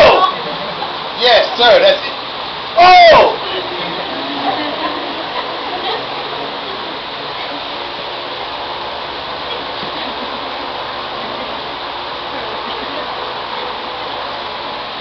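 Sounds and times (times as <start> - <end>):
faint indistinct chatter: 0.0 - 15.0
room noise: 0.0 - 15.0.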